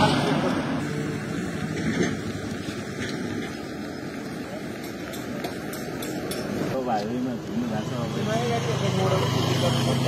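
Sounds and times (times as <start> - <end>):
vehicle passing on highway: 0.0 - 4.4, 6.5 - 10.0.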